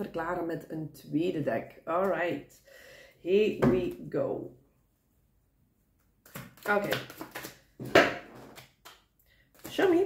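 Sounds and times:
cards being shuffled: 0:06.2 - 0:10.0.

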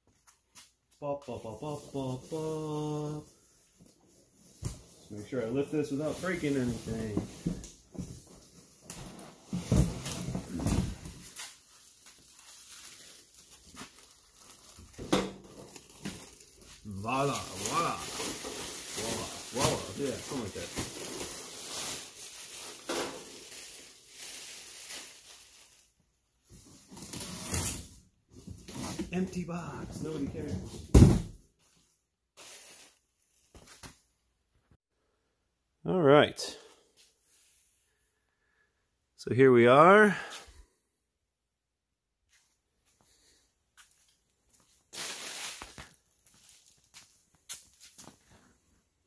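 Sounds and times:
cardboard and plastic wrap rubbing: 0:05.8 - 0:07.7, 0:15.6 - 0:25.8
cardboard dropped with a thump: 0:30.8 - 0:31.4.

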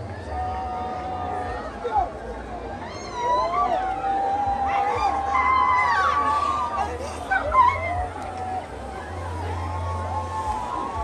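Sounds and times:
people wailing and crying: 0:02.7 - 0:11.0.

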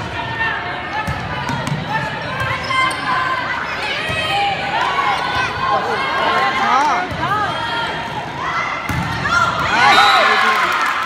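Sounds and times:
spectators talking: 0:00.0 - 0:11.0.

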